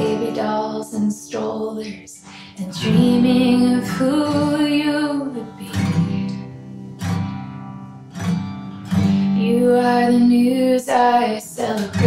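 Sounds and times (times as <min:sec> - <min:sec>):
person singing: 0:00.0 - 0:06.3, 0:09.3 - 0:12.0
acoustic guitar strummed chords: 0:00.0 - 0:12.0.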